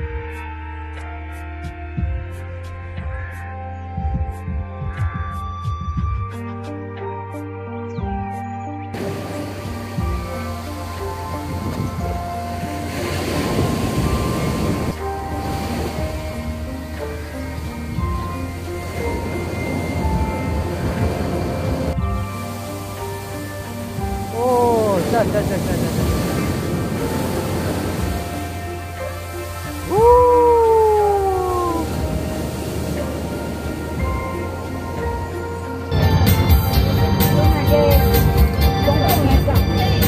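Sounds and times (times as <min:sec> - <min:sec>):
soft background music: 0:00.0 - 0:40.0
surf washing up a beach: 0:09.0 - 0:38.4
person crying out with sliding pitch: 0:29.9 - 0:32.1.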